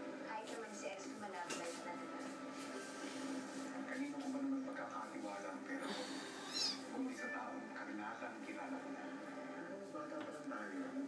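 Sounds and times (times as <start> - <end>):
kitten squeaky mew: 6.4 - 6.9.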